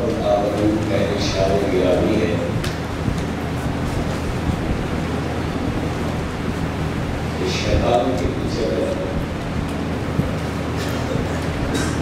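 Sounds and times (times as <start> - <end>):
low hum: 0.0 - 12.0
microphone hiss: 0.0 - 12.0.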